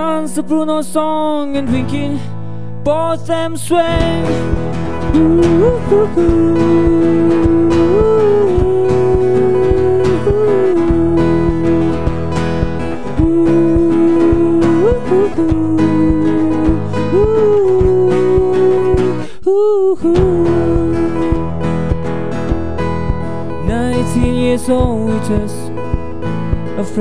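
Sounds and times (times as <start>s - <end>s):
strummed acoustic guitar: 0.0s - 27.0s
man singing held notes: 2.9s - 12.0s, 13.1s - 21.4s.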